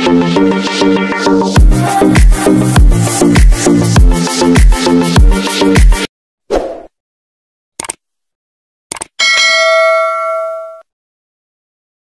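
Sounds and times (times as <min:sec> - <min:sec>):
double mouse click: 0:08.9 - 0:09.1
notification bell ding: 0:09.2 - 0:10.9.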